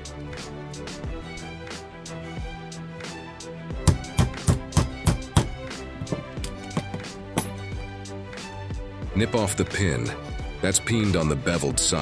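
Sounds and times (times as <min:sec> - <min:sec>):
background music with violin: 0:00.0 - 0:12.0
hammer striking metal wedge: 0:03.8 - 0:07.8.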